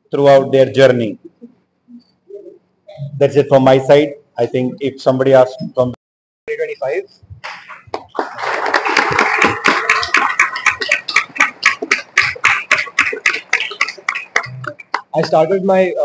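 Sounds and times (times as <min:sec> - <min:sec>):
group of people applauding: 0:07.4 - 0:15.5.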